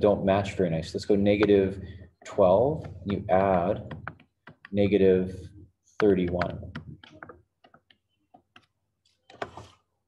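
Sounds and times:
stylus tapping touchscreen: 0:01.1 - 0:09.8.

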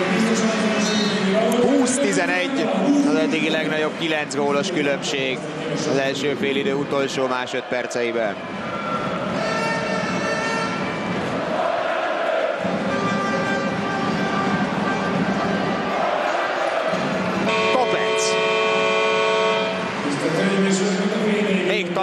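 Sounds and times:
arena crowd noise: 0:00.0 - 0:22.0
faint horn-like tones: 0:17.4 - 0:20.0
loud multi-tone buzzer: 0:17.5 - 0:20.0.

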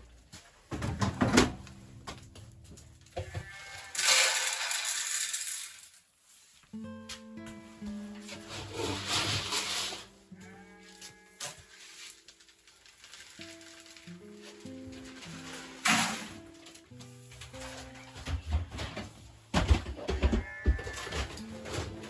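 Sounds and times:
grain pouring into container: 0:03.9 - 0:06.0
background music: 0:06.7 - 0:22.0
grain scooped from metal bin: 0:08.3 - 0:10.2.

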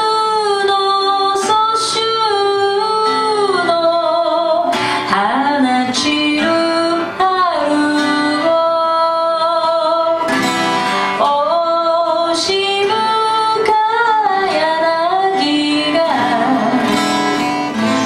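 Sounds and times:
acoustic guitar: 0:00.0 - 0:18.0
woman singing: 0:00.0 - 0:18.0.

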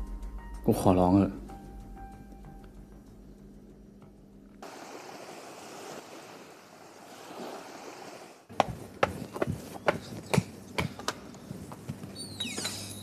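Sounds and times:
faint steady hum: 0:01.2 - 0:07.0
steady rushing noise: 0:04.6 - 0:08.6.

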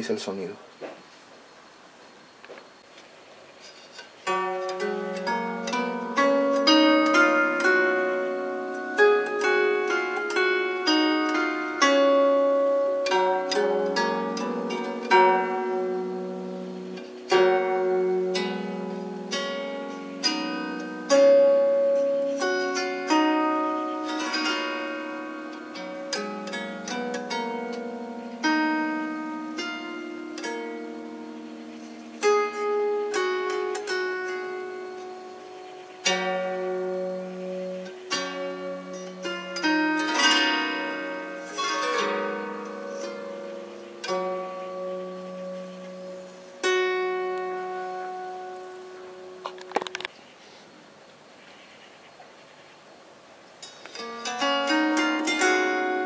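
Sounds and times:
plucked zither notes: 0:03.0 - 0:51.8, 0:53.0 - 0:56.0.

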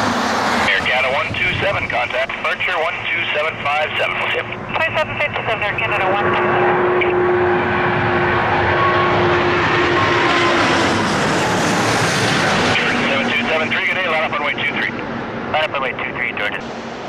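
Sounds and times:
jet airliner passing overhead: 0:00.0 - 0:17.0
radio talk: 0:00.7 - 0:07.7, 0:12.4 - 0:16.7.

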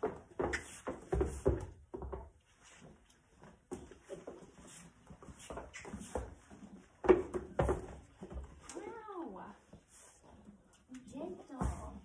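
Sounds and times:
horse hooves on floor: 0:00.0 - 0:12.0.

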